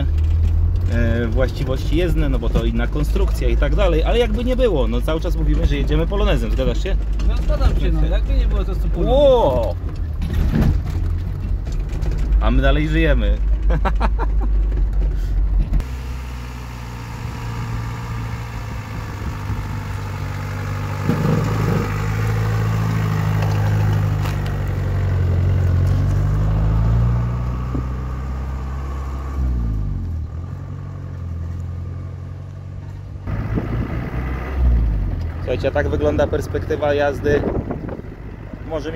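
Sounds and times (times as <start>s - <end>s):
car engine revving: 0.0s - 38.9s.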